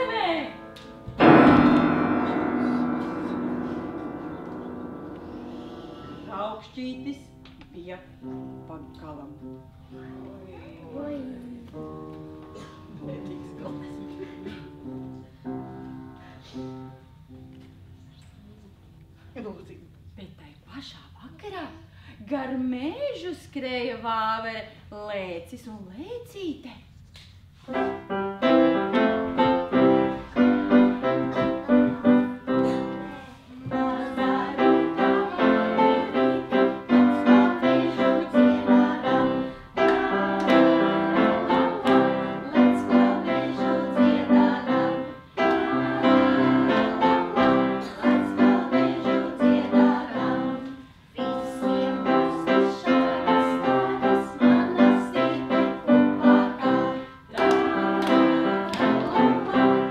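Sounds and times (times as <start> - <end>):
piano playing repeated chords: 0.0 - 10.1, 27.7 - 33.2, 33.8 - 59.9.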